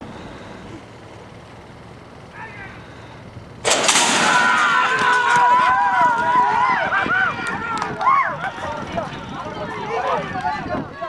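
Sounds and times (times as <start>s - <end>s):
outdoor crowd background: 0.0s - 11.0s
crowd shouting and cheering: 4.0s - 11.0s.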